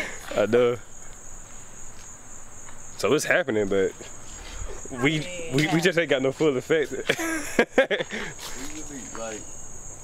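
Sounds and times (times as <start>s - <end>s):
insects droning: 0.0s - 10.0s
person laughing: 7.0s - 8.4s.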